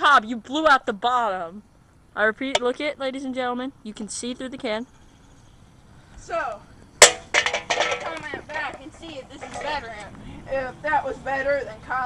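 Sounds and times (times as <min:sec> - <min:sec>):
voices: 0:00.0 - 0:12.0
sharp bang: 0:07.0 - 0:08.4.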